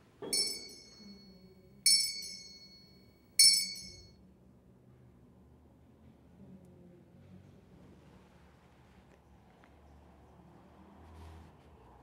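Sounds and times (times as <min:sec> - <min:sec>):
altar bell ringing: 0:00.2 - 0:04.1.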